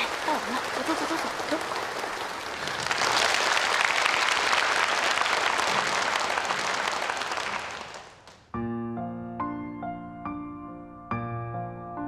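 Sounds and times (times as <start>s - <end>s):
audience applause: 0.0s - 8.4s.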